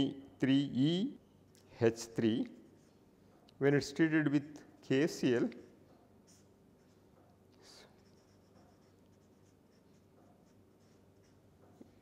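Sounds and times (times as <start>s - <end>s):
low room hum: 0.0s - 12.0s
felt-tip marker writing on paper: 8.0s - 11.8s.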